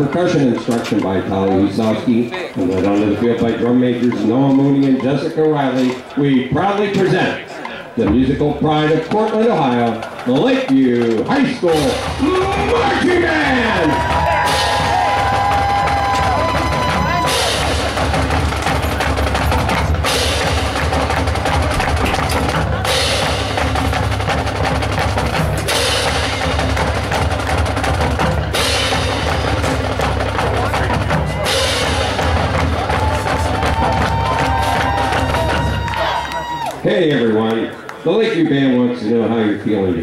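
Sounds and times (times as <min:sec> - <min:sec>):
marching band drums: 0:08.0 - 0:36.9.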